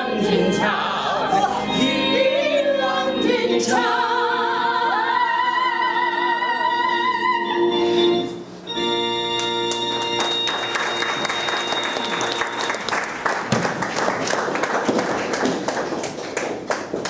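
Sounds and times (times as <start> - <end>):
audience applause: 9.7 - 17.0.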